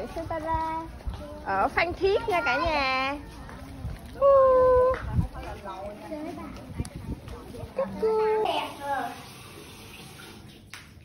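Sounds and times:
child's voice: 0.3s - 1.4s
faucet running into sink: 8.5s - 10.7s.

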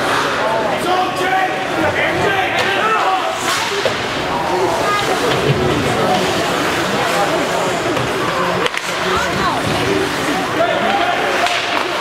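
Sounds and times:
hockey sticks and puck cracking: 0.0s - 0.4s, 2.5s - 12.0s.

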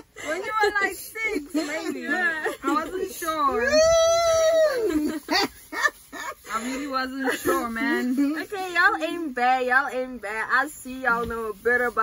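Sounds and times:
woman laughing squeal: 3.5s - 6.4s.

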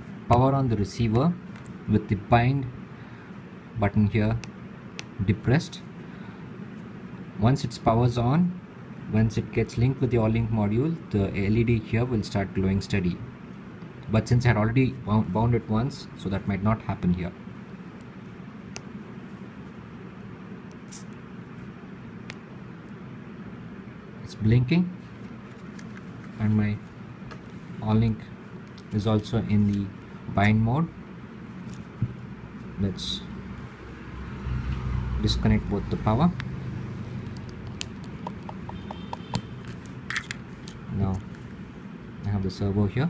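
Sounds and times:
low background hum and hiss: 0.0s - 43.0s
plastic connectors clicking: 39.3s - 40.8s.

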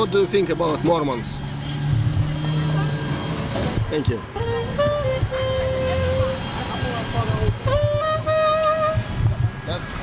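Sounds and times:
street noise: 0.0s - 10.0s
traffic engine hum: 0.0s - 10.0s.

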